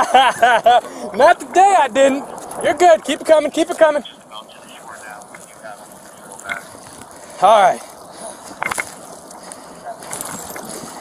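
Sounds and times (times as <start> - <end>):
faint distant voices: 0.7 - 11.0.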